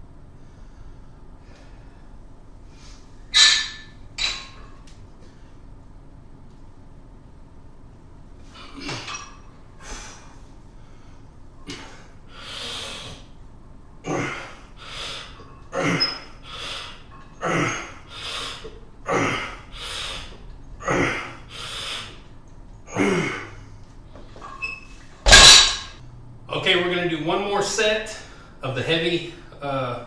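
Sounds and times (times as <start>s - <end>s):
man breathing hard: 9.8s - 13.3s, 14.2s - 15.4s, 16.4s - 22.3s.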